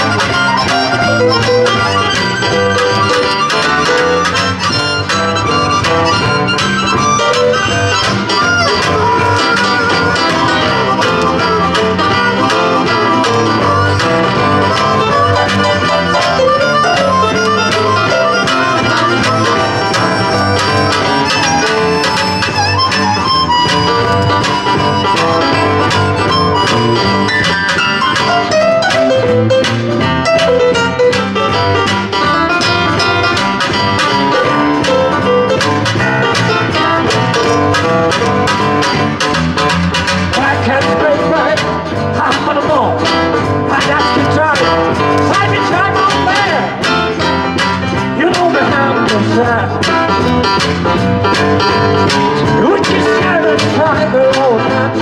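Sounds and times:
electric bass: 0.0 - 55.0
harmonica through microphone: 0.0 - 55.0
strummed acoustic guitar: 0.0 - 55.0.

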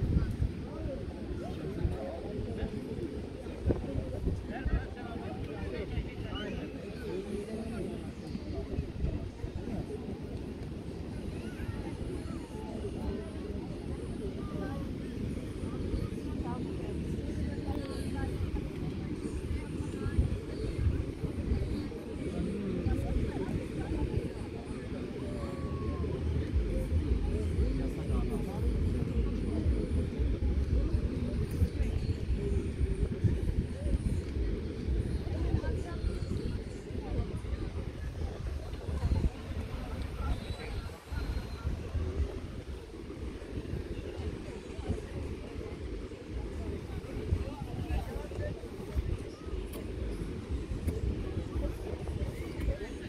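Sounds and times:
chatter of voices: 0.0 - 53.0
wind buffeting microphone: 0.0 - 53.0
low steady rumble: 25.4 - 40.5.

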